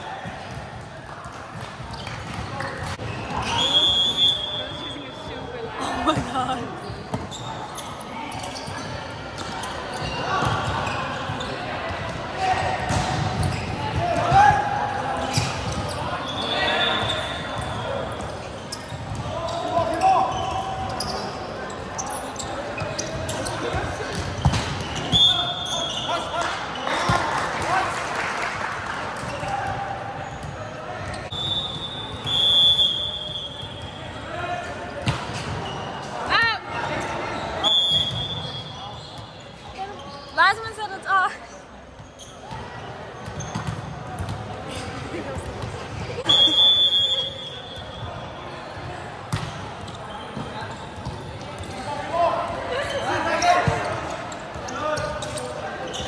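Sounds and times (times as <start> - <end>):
sneakers squeaking on court: 0.2 - 0.8, 1.5 - 27.2, 29.2 - 32.5, 34.8 - 46.5, 47.3 - 56.0.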